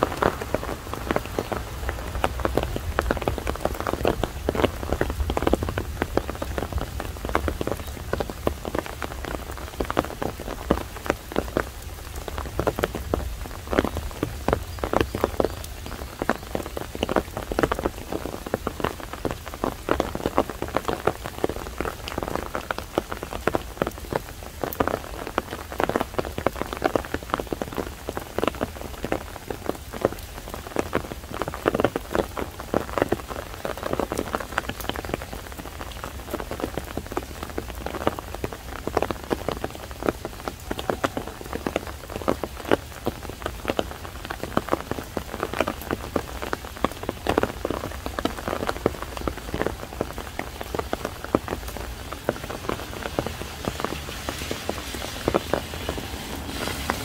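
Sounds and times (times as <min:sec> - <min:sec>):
rain falling: 0:00.0 - 0:57.0.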